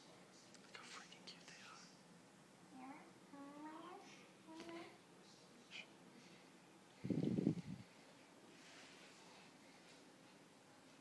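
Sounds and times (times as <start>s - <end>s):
faint whispering: 0.4s - 2.0s, 3.3s - 7.7s.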